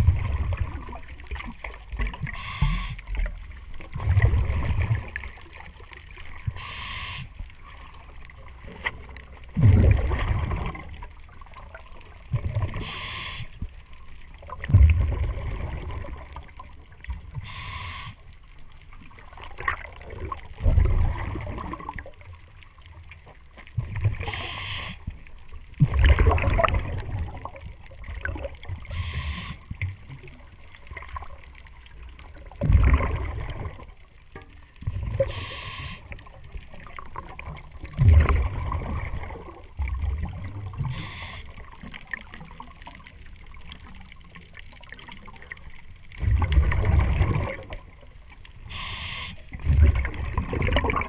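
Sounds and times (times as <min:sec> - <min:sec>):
rumble of exhaled bubbles: 0:00.0 - 0:51.0
light ticking and scraping: 0:04.6 - 0:09.6, 0:10.6 - 0:14.8, 0:16.0 - 0:21.2, 0:33.5 - 0:38.0
regulator hissing inhalation: 0:06.6 - 0:07.3, 0:12.8 - 0:13.5, 0:17.4 - 0:18.2, 0:24.3 - 0:25.0, 0:35.3 - 0:36.0, 0:40.9 - 0:41.5, 0:48.7 - 0:49.4.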